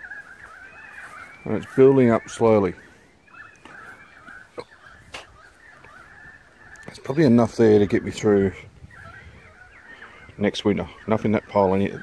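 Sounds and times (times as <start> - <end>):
birds calling faintly: 0.0 - 12.0.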